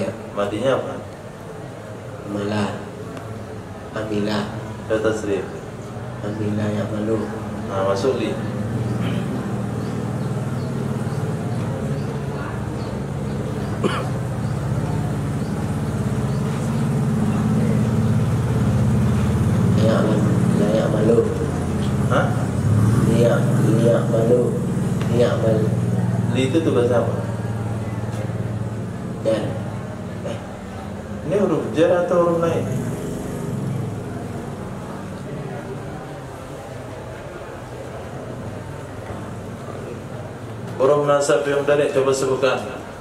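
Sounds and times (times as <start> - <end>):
engine idling: 5.8 - 36.8.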